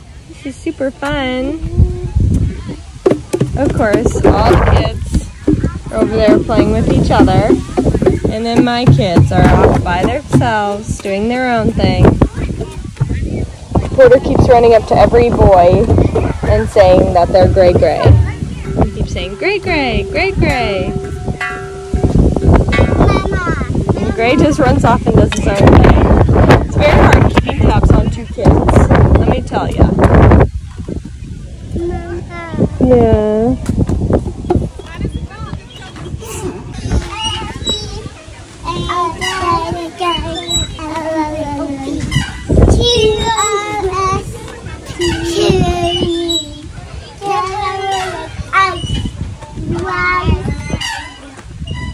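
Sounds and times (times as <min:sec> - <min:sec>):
wind on microphone: 0:00.0 - 0:51.9
metal chimes ringing: 0:17.3 - 0:24.9
toddler sing-song calling: 0:35.1 - 0:51.9.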